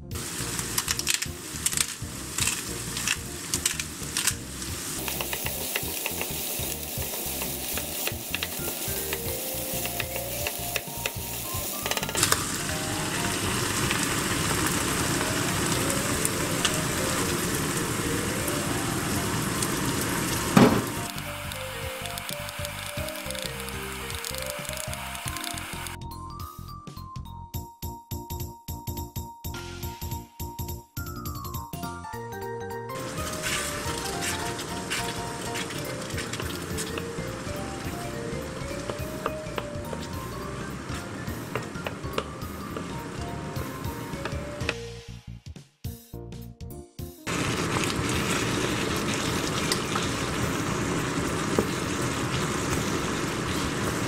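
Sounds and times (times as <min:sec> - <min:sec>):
meat sizzling in a frying pan: 0:00.1 - 0:26.0, 0:33.0 - 0:44.5, 0:47.3 - 0:54.0
spoon tapping and scraping pan: 0:05.0 - 0:11.2.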